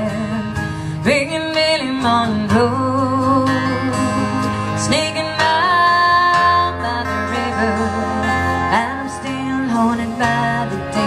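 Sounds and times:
acoustic guitars playing country: 0.0 - 11.0.

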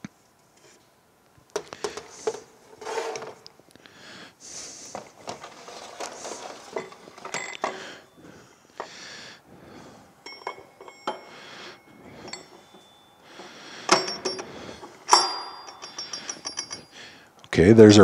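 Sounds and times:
metal parts clinking and knocking: 4.9 - 8.1, 10.3 - 17.0.

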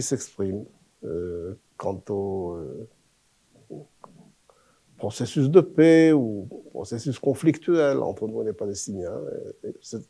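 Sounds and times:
faint low vocal murmur: 3.6 - 4.4
mouth clicks: 3.6 - 4.4.

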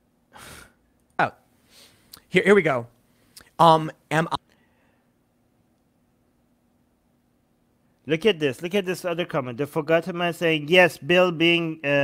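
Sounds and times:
man's sharp breath in: 0.3 - 0.8, 1.6 - 2.1.

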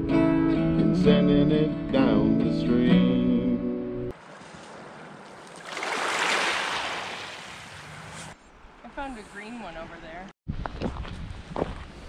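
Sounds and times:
wave washing on pebble beach: 5.4 - 8.4.

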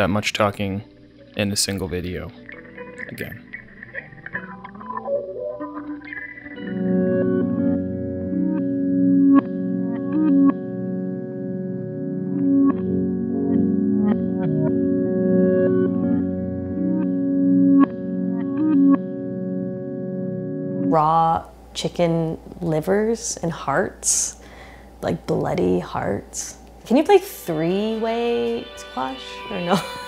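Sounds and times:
plucked guitar notes: 0.0 - 21.5
electric guitar sustained chords: 0.8 - 22.3, 26.8 - 30.0.

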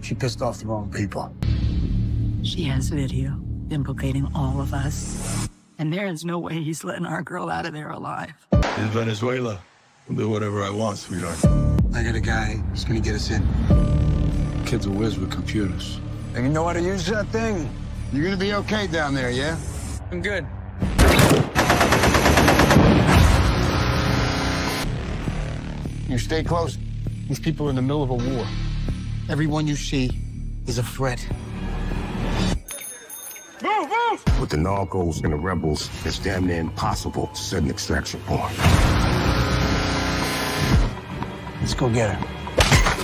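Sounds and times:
machine gun automatic fire: 21.0 - 23.1
loud buzzing drone: 38.6 - 41.0.

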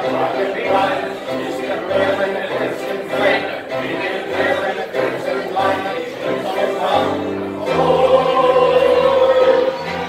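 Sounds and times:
people singing together: 0.0 - 10.0.

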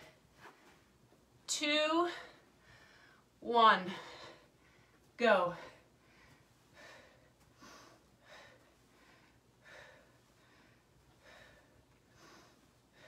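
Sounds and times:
person breathing hard: 3.9 - 13.0.

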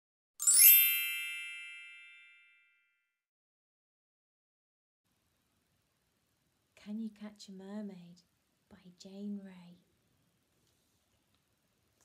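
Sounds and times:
shimmering bell chime: 0.4 - 2.8.

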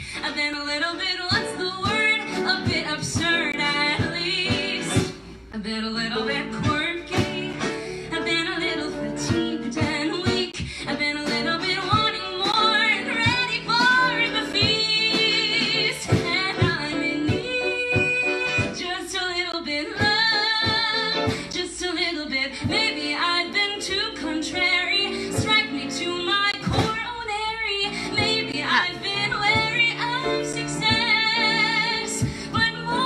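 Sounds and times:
drums: 0.0 - 33.0
woman singing with vibrato: 0.0 - 33.0
strummed guitar: 6.0 - 19.1.

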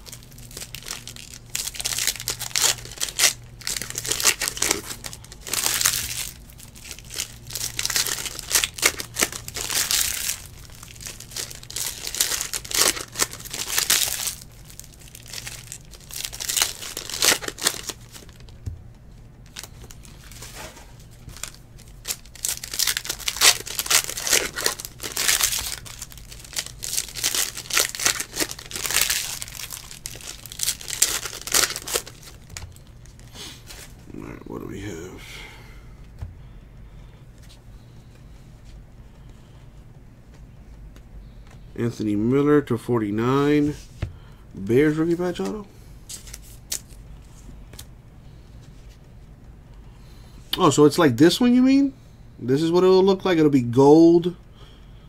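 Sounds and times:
foil wrappers crinkling and tearing: 0.0 - 18.6, 19.4 - 34.0, 44.6 - 47.0.

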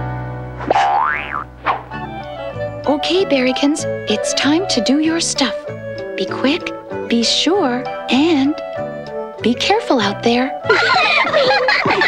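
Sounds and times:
children's song backing music: 1.9 - 12.0.

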